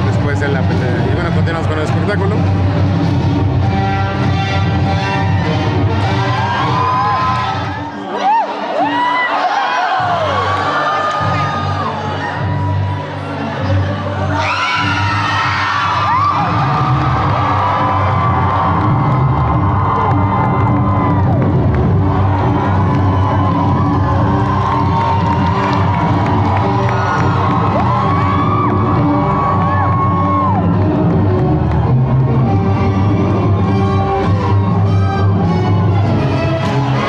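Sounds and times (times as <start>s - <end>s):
loud music: 0.0s - 37.0s
audience cheering and whooping: 5.0s - 12.9s, 14.3s - 34.3s.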